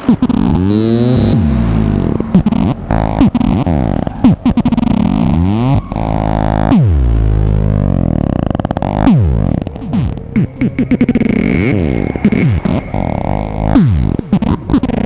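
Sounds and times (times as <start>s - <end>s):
modular synthesizer drone sweeping: 0.0s - 15.0s.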